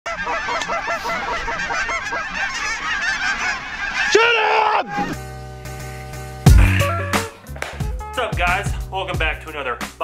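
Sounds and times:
geese honking: 0.1s - 9.8s.

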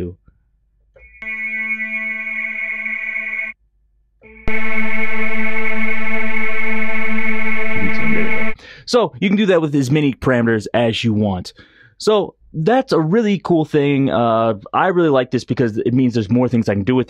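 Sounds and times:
sustained synthesizer note: 1.0s - 3.6s, 4.2s - 8.6s.

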